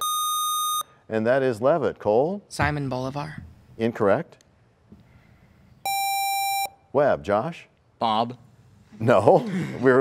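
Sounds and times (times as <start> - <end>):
electronic buzzer beep: 0.0 - 0.9, 5.8 - 6.8.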